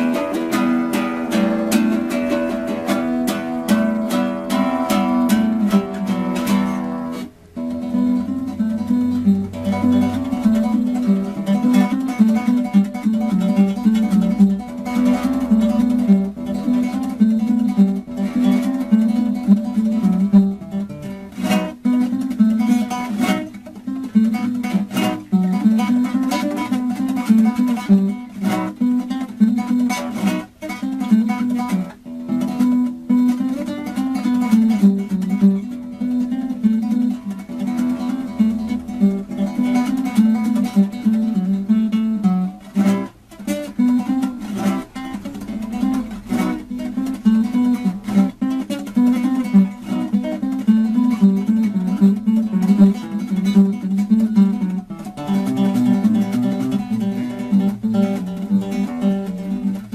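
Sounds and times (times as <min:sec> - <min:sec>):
acoustic guitar melody and strumming: 0:00.0 - 0:59.9.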